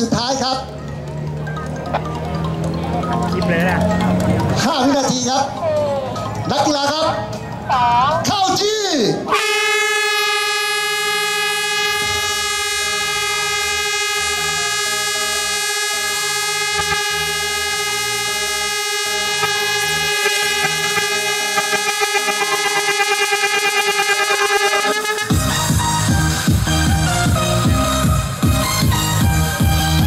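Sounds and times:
faint music with a beat: 0.0 - 8.4, 11.5 - 30.0
starting horn blast: 9.2 - 30.0.

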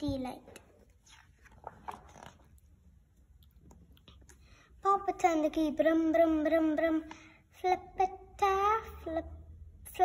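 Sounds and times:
paper page turning: 0.8 - 2.8.

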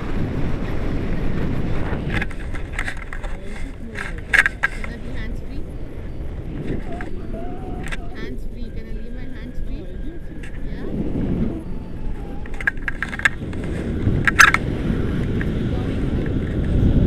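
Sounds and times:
wind buffeting microphone: 0.0 - 17.0
woman talking: 1.0 - 1.6, 3.2 - 5.8, 6.8 - 11.0.

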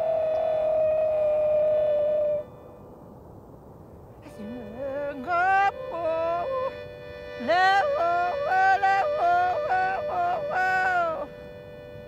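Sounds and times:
woman yodeling: 0.0 - 2.5, 4.2 - 6.8, 7.4 - 11.4
button accordion holding note: 4.3 - 12.0.

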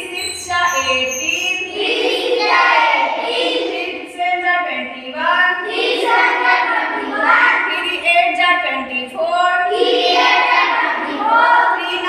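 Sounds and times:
children chanting: 0.0 - 8.0, 9.5 - 12.0.

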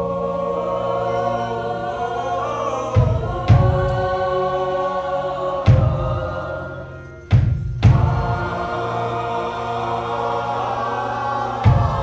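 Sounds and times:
choir singing held chord: 0.0 - 12.0.

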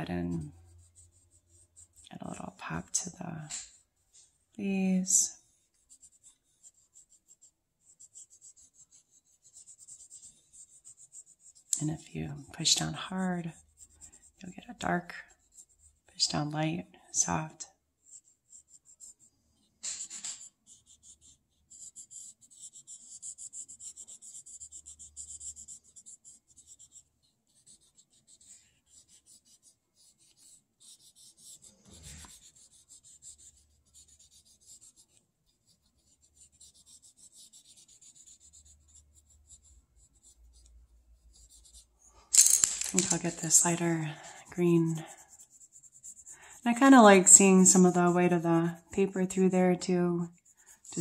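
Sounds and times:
pencil scratching on paper: 0.0 - 42.3, 42.9 - 51.0.

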